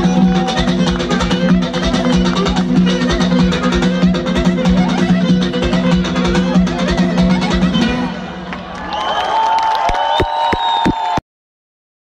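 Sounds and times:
concert crowd cheering: 0:00.0 - 0:02.8, 0:07.9 - 0:11.2.

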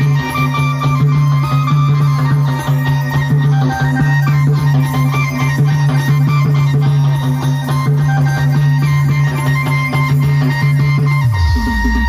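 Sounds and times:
fast drum beat: 0:00.0 - 0:12.0
low bass line: 0:11.2 - 0:12.0.

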